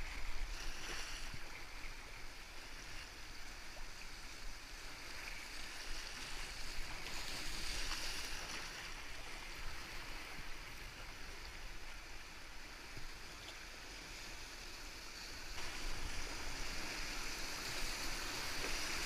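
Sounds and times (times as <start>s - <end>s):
rushing whitewater rapids: 15.4s - 19.0s.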